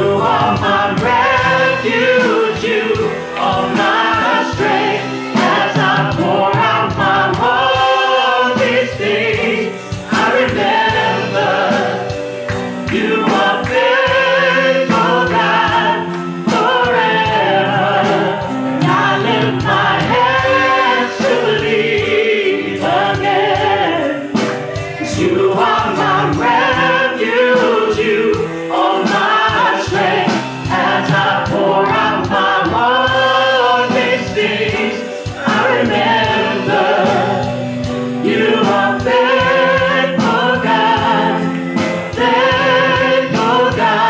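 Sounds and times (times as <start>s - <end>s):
band with drums: 0.0s - 44.0s
group singing worship song: 0.0s - 44.0s.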